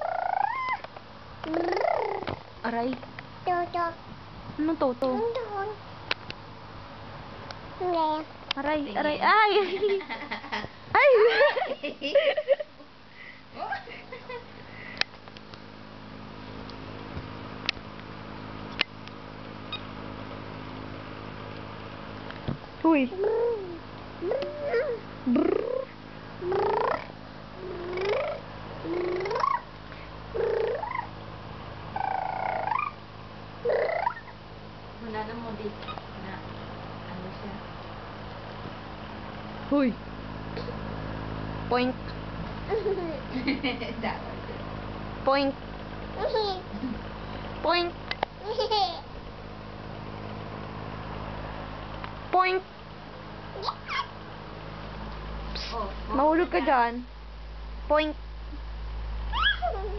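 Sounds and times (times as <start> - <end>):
toddler squealing: 0.0 - 0.8, 53.6 - 54.1, 59.3 - 59.9
toddler crying out: 24.4 - 25.0, 59.3 - 59.9.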